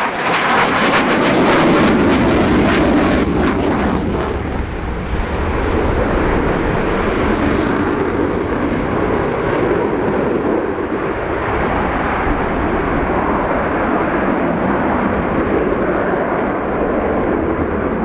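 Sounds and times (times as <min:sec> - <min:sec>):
jet engine roar: 0:00.0 - 0:18.0.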